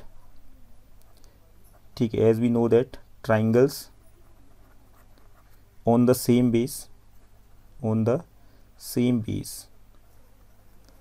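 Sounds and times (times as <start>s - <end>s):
man speaking: 2.0s - 4.0s, 5.8s - 7.0s, 7.8s - 9.8s
stylus scratching on a tablet: 3.9s - 5.7s, 9.9s - 11.0s.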